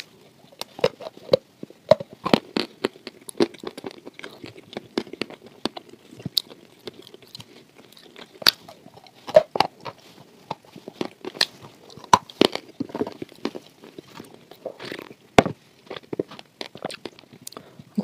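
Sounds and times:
chewing mouth clicks and smacks: 15.9s - 17.6s.

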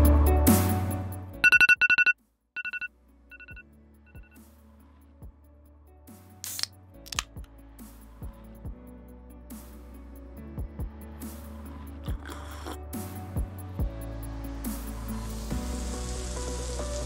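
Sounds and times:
phone alarm beeping: 1.4s - 4.4s.

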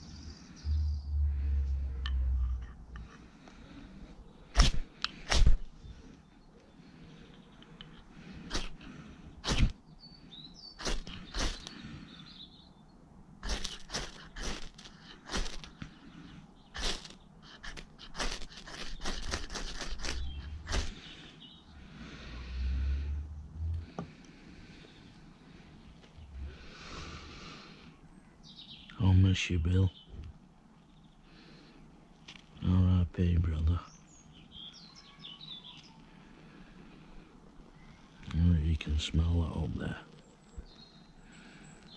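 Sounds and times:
faint bird chirps: 0.0s - 4.6s, 32.7s - 36.6s, 37.6s - 41.9s
striker rasping on ferro rod: 13.4s - 15.7s.

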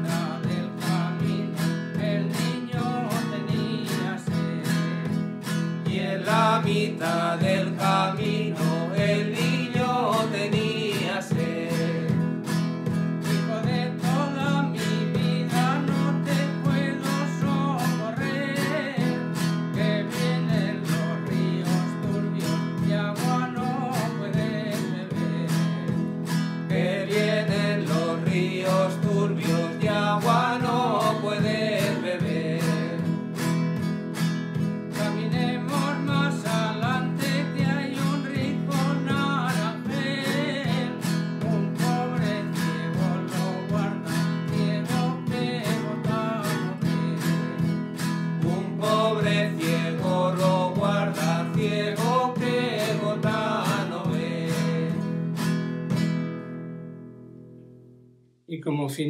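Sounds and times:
men singing: 0.0s - 55.6s
acoustic guitar strumming: 0.0s - 58.4s.

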